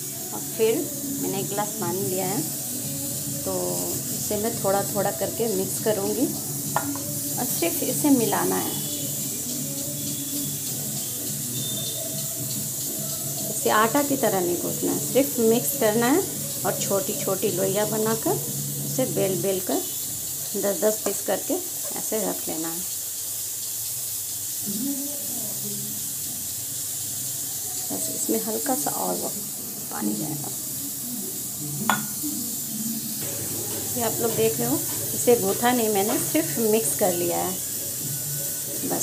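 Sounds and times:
steady high-pitched hiss: 0.0s - 39.0s.

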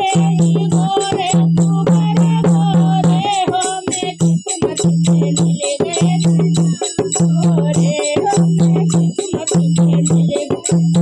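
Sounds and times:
hand drum beating fast rhythm: 0.0s - 11.0s
small hand cymbals ringing: 0.0s - 11.0s.

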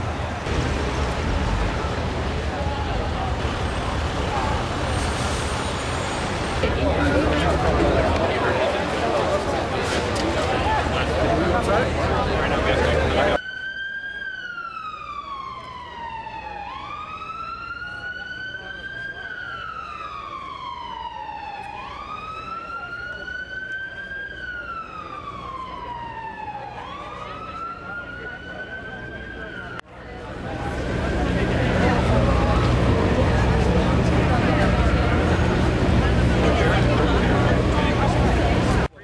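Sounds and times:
emergency siren wailing: 0.0s - 38.9s
crowd and street noise: 0.0s - 39.0s.

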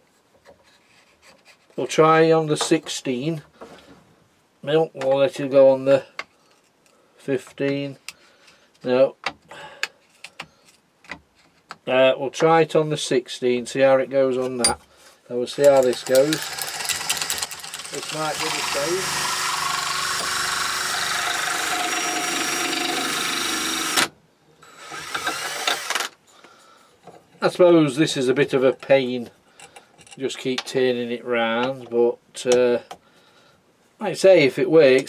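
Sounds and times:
cutter tearing wood: 15.6s - 24.1s
cordless drill running: 16.0s - 26.2s.

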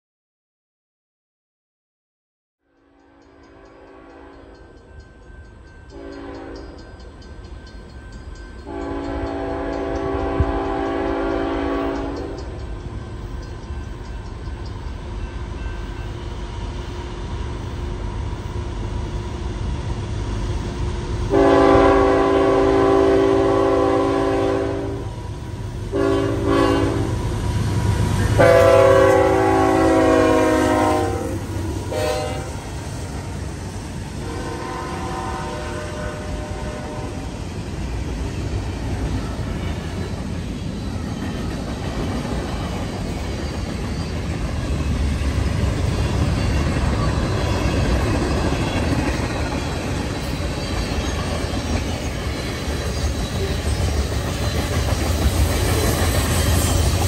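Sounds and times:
train rumbling on rails: 2.8s - 57.0s
locomotive air horn blasts: 3.0s - 4.6s, 5.9s - 6.7s, 8.7s - 12.4s, 21.3s - 25.2s, 25.9s - 27.2s, 28.3s - 32.8s, 34.2s - 37.4s.

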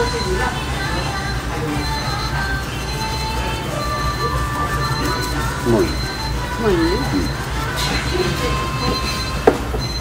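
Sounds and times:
faint voices: 0.0s - 9.4s
restaurant low rumble: 0.0s - 10.0s.

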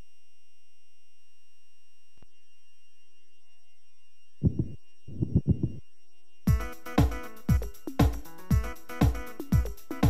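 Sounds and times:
low thumping beats: 4.4s - 5.8s, 6.5s - 10.0s
held electronic chord: 6.1s - 10.0s.

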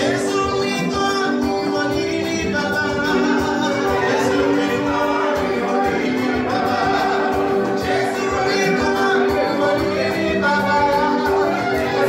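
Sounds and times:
church choir singing a hymn: 3.8s - 10.8s.

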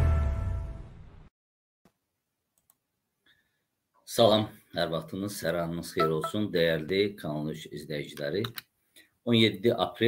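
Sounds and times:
faint small clicks: 2.6s - 2.8s, 8.1s - 8.7s.

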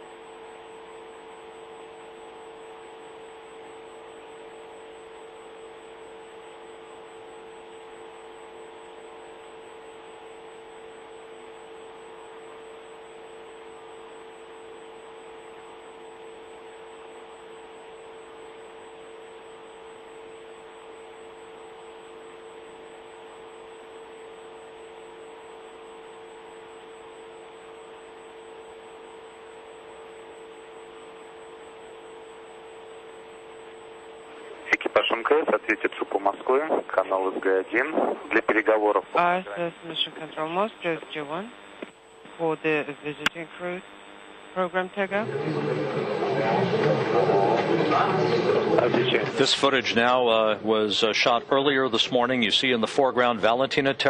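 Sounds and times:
constant electrical hum: 0.0s - 54.0s.

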